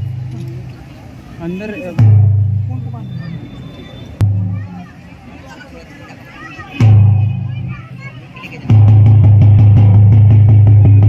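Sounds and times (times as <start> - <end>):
fast even drumbeat: 1.9 - 3.2, 4.2 - 5.0, 6.7 - 11.0.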